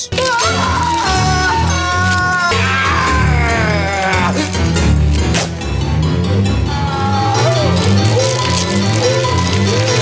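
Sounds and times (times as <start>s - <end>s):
horror film music with bass: 0.2s - 10.0s
man wailing howl-like cry: 0.3s - 4.5s, 6.6s - 7.7s.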